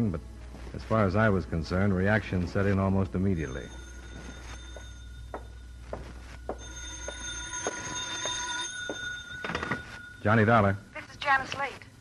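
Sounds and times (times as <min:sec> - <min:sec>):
telephone bell ringing: 0:03.3 - 0:10.9.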